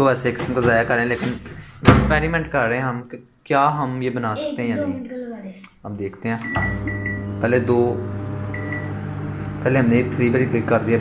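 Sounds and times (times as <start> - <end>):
microwave keypad beeps: 6.4 - 7.4, 8.5 - 8.9
microwave oven humming: 6.4 - 11.0.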